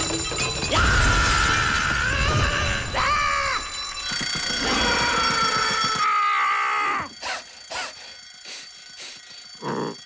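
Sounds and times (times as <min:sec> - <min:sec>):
twin-bell alarm clock ringing: 0:02.9 - 0:10.0.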